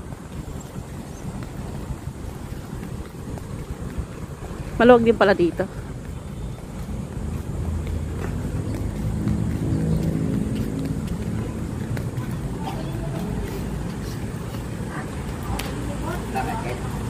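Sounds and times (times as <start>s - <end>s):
low traffic rumble: 0.0s - 17.0s
vehicle engine running: 0.0s - 17.0s.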